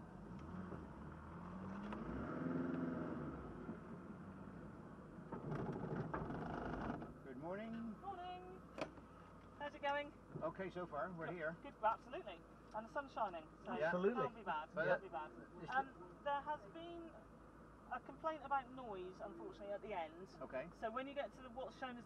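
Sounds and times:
car engine running: 0.0 - 22.0
people talking: 7.3 - 8.6, 9.6 - 17.2, 17.9 - 22.0.

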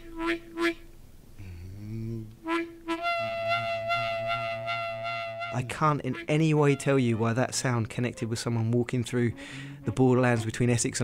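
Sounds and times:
mouth-resonated string instrument: 2.0 - 10.8.

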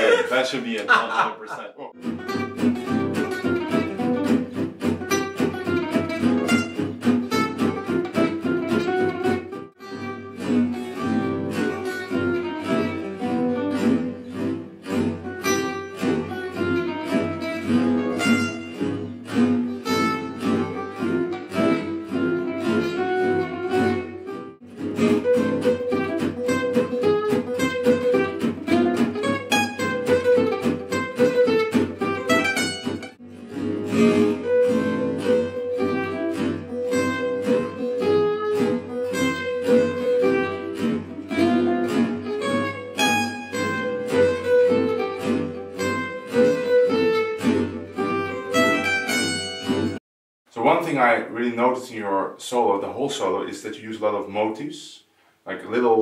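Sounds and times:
lead acoustic guitar solo: 0.0 - 50.0
rhythm guitar accompaniment: 0.0 - 50.0.

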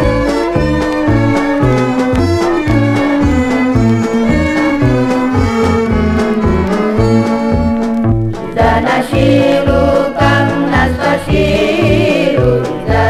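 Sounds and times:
instrumental orchestra music: 0.0 - 9.0.

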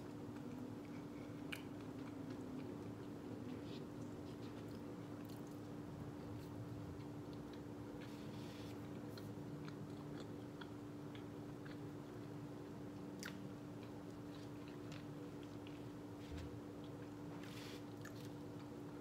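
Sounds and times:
chewing food: 0.0 - 16.0, 16.8 - 19.0
steady low hum: 0.0 - 19.0.

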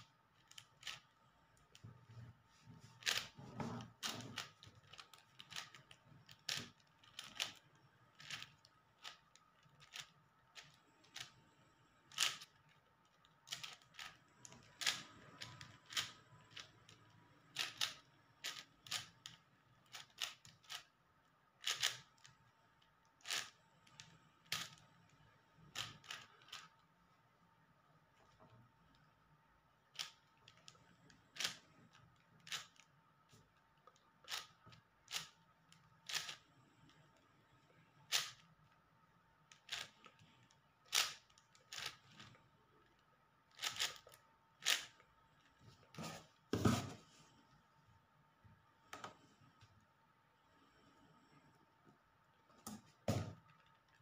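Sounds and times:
speed cube clicking: 0.3 - 1.1, 3.0 - 3.4, 4.0 - 11.4, 12.1 - 21.0, 21.6 - 22.4, 23.1 - 24.9, 25.6 - 26.8, 29.9 - 32.9, 33.9 - 36.4, 38.1 - 38.5, 39.5 - 45.0.

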